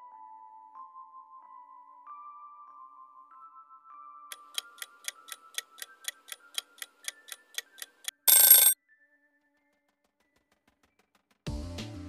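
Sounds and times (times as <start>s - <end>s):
clock-like ticking: 4.3s - 8.8s.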